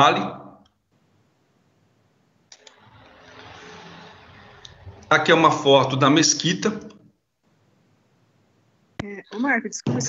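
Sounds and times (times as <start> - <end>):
faint steady room hiss: 0.0 - 2.6, 5.1 - 10.0.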